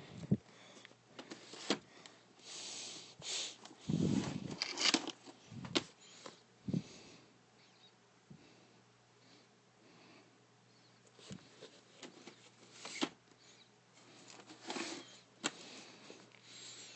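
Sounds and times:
plastic cases scraping and sliding: 3.7s - 5.9s, 14.0s - 16.3s.

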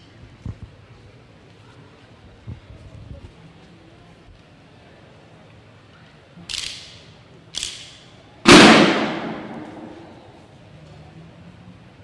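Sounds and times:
drum line unison hits: 8.5s - 10.2s.

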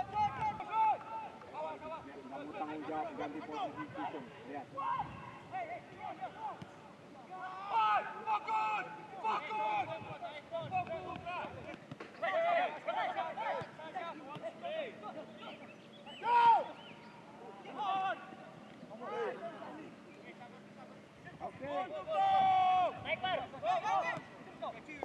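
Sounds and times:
players shouting calls: 0.0s - 25.0s.

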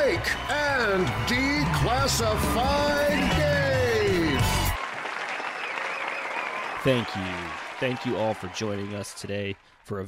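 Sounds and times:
man speaking: 0.0s - 4.4s, 6.8s - 10.0s
audience applause: 0.0s - 10.0s.

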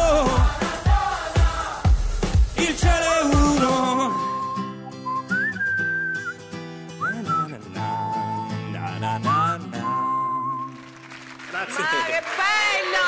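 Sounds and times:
acoustic guitar and band chords: 0.0s - 13.0s
whistled melody: 3.5s - 11.1s.

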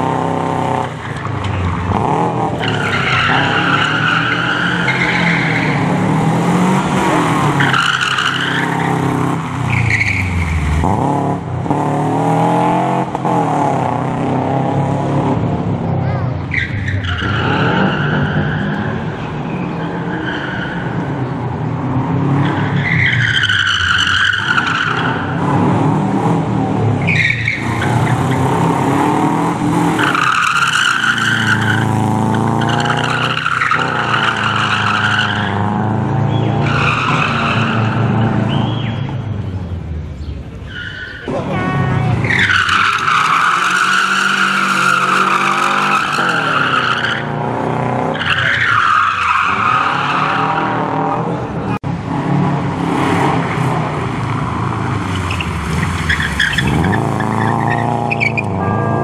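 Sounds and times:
tyres squealing: 1.0s - 6.0s, 29.8s - 39.2s, 40.2s - 47.4s, 48.1s - 50.8s, 54.4s - 58.6s
car engine revving hard: 1.8s - 15.6s, 27.6s - 38.7s, 42.2s - 59.0s.

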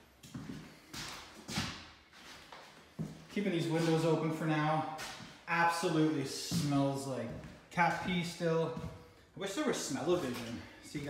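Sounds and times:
footsteps on bare floor: 0.0s - 9.2s.

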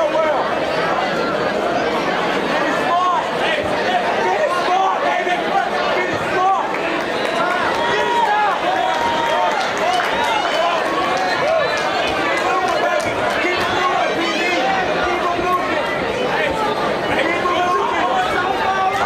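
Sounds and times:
crowd talking and shouting: 0.0s - 19.0s.

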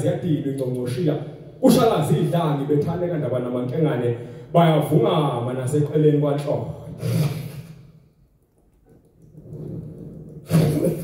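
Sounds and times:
person declaiming into microphone: 10.5s - 11.0s.

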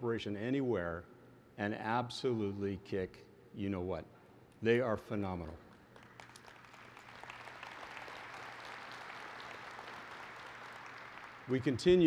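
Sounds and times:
audience applauding: 5.7s - 12.0s.

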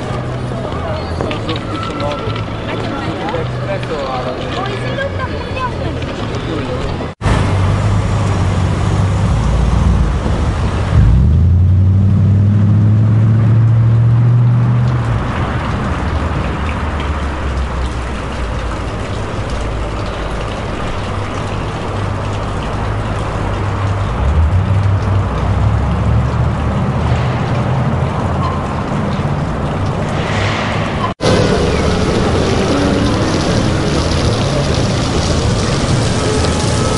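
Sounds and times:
vehicle engines running: 0.0s - 36.9s
heavy engine low drone: 7.0s - 36.9s.

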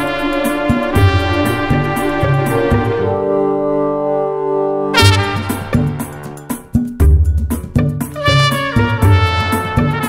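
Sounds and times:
trumpet: 0.0s - 6.8s, 8.1s - 10.0s
bass: 5.0s - 10.0s
drum hits: 5.0s - 10.0s.

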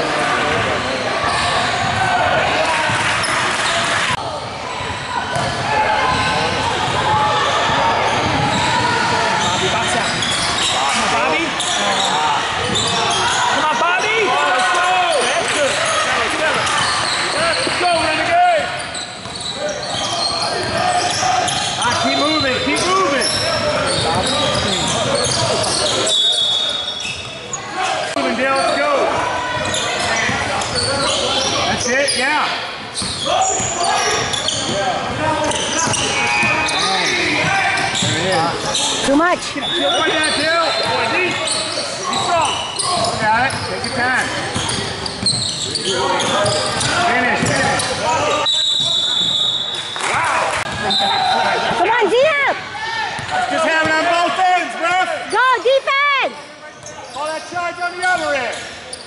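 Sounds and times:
spectators talking and calling out: 0.0s - 59.0s.

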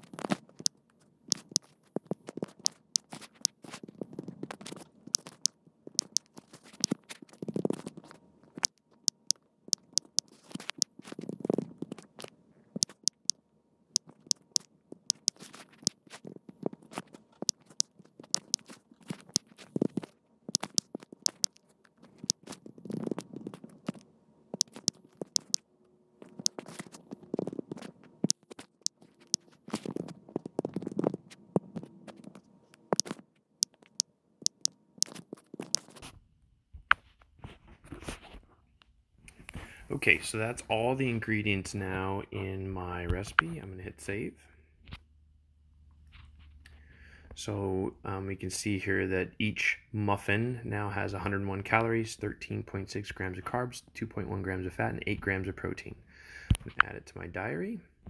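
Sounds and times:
smartphone keyboard tapping clicks: 0.6s - 1.7s, 5.1s - 7.0s, 12.2s - 13.4s, 14.0s - 16.0s, 17.4s - 19.5s, 20.6s - 21.6s, 24.6s - 25.6s, 33.0s - 35.9s.

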